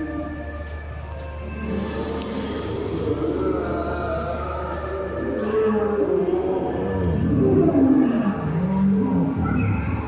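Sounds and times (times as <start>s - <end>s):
dinosaur roar over loudspeakers: 1.6s - 10.0s.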